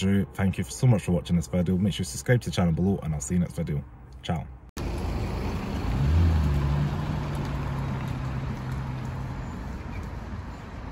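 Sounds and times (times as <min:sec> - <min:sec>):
car engine pulling away: 0:04.8 - 0:10.8.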